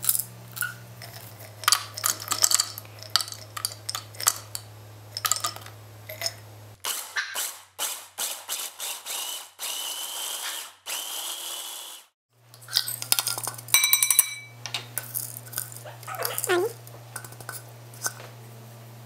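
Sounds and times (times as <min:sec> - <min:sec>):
electric food chopper whirring: 0:06.8 - 0:12.1
ringing clink in bowl: 0:12.8 - 0:14.6.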